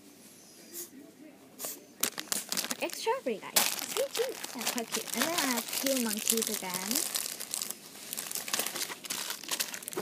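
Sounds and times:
plastic bags crinkling: 2.0s - 10.0s.

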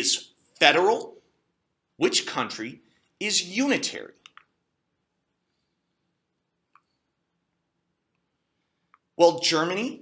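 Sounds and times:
person speaking: 0.0s - 1.4s, 2.0s - 4.6s, 9.0s - 10.0s
faint quick clicks: 6.7s - 7.0s.

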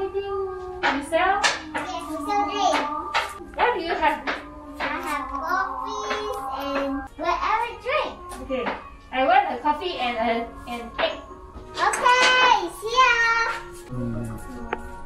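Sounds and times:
young child speaking: 1.8s - 2.9s, 4.9s - 8.4s, 11.8s - 13.6s.

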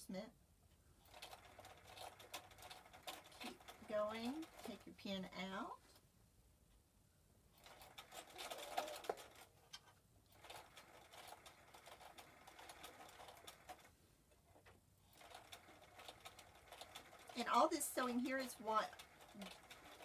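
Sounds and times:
electric sewing machine stitching: 1.0s - 5.0s, 7.6s - 9.5s, 10.3s - 14.0s, 15.1s - 20.0s.

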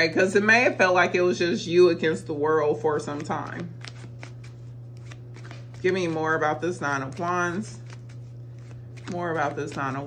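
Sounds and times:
low steady hum: 0.0s - 10.0s
cards shuffled by hand: 3.0s - 10.0s.

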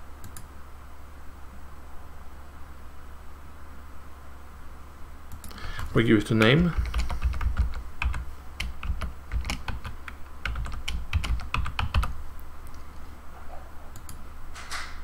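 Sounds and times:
computer keyboard typing: 5.3s - 12.2s, 13.9s - 14.2s.

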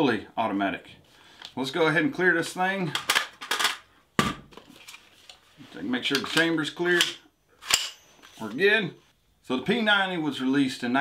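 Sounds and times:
gun handling scrape: 4.6s - 8.6s.

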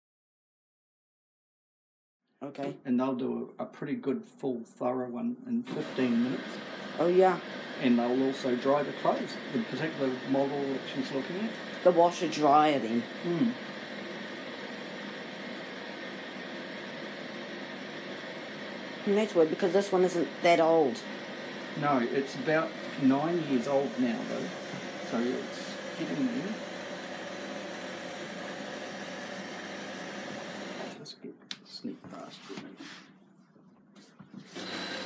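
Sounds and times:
washing machine hissing: 5.7s - 31.0s, 34.4s - 35.0s.

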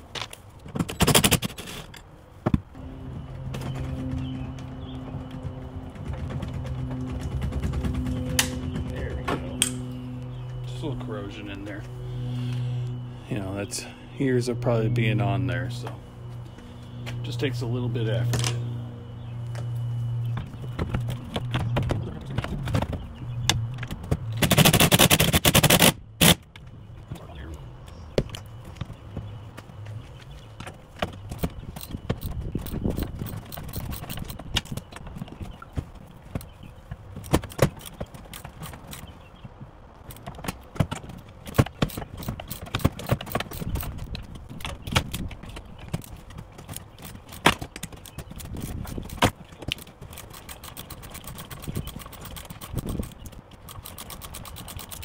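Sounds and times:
hand tools clicking and knocking: 4.6s - 9.9s, 30.6s - 39.2s, 40.0s - 55.0s.

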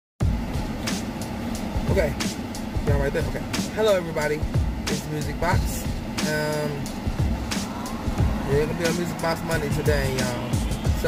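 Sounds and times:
low rumble inside car cabin: 0.2s - 11.0s.

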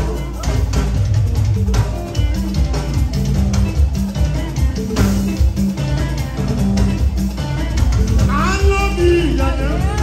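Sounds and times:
live band dance music: 0.0s - 10.0s.

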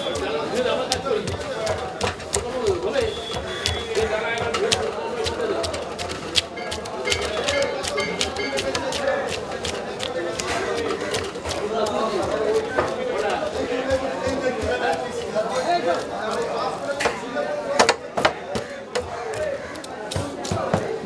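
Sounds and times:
market voices: 0.0s - 21.0s.

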